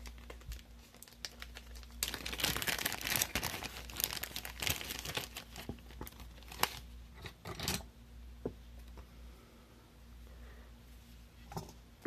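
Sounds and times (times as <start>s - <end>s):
packaging crinkling and rustling: 0.0s - 6.9s.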